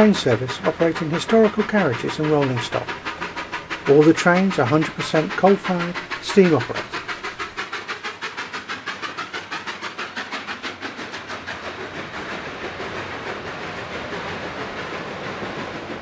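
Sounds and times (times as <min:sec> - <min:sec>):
steam locomotive chuffing: 0:00.0 - 0:16.0
train cars rolling by: 0:00.0 - 0:16.0.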